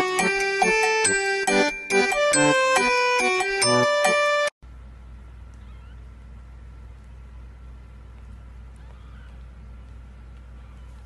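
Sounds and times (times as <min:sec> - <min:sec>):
steady low hum: 0:04.6 - 0:11.0.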